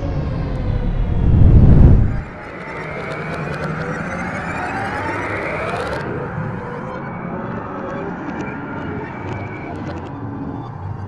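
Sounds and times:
deep rumble: 0.0s - 2.4s
layered whine rising in pitch: 0.0s - 11.0s.

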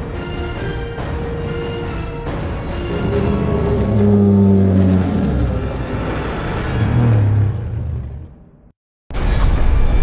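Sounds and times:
loud low drone: 2.4s - 8.5s.

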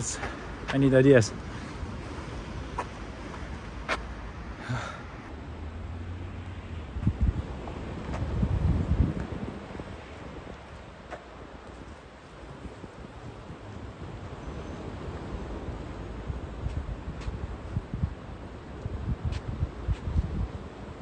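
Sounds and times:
wind buffeting microphone: 6.6s - 21.0s.

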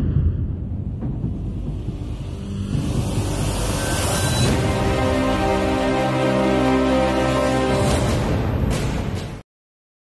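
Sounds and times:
deep rumbling drone: 0.0s - 5.7s
theme music: 0.0s - 9.4s.

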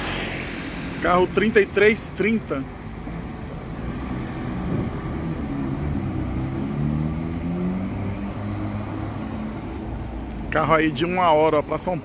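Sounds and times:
bus diesel engine pulling away: 2.3s - 10.5s.

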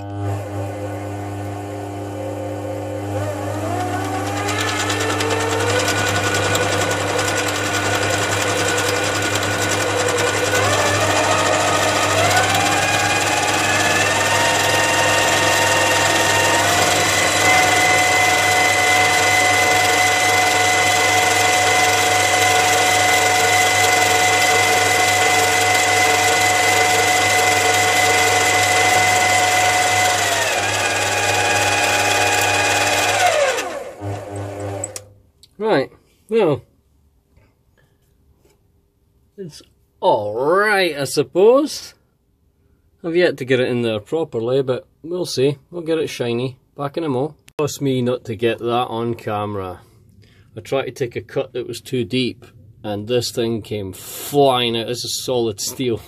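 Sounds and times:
lathe motor whining: 0.0s - 35.1s.

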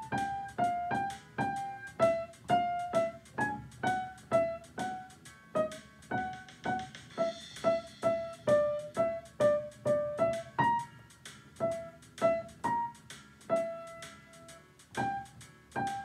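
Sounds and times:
blues piano improvisation: 0.0s - 16.0s.

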